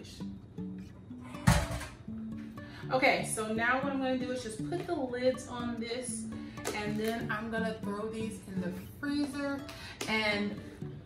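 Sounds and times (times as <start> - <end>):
plucked guitar music: 0.0 - 11.0
metal bowl clattering: 1.4 - 2.1.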